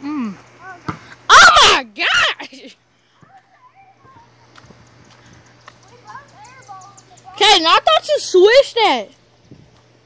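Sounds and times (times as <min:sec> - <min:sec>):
distant voices talking: 0:00.4 - 0:09.2.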